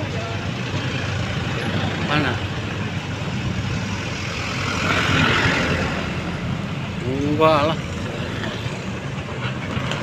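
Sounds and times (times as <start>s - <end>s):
motorcycle engines: 0.0s - 10.0s
truck engine rumble: 0.0s - 10.0s
vehicle rushing by: 0.6s - 9.1s.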